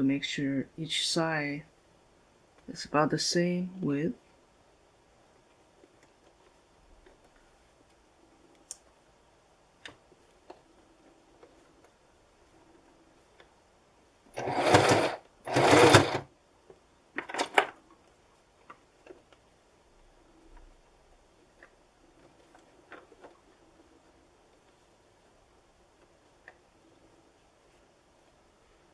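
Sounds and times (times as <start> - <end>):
sewing machine stitching: 14.3 - 16.3.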